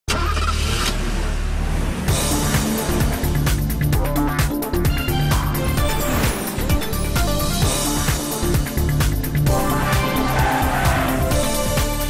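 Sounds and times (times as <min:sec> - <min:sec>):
car engine running loudly: 0:00.1 - 0:12.0.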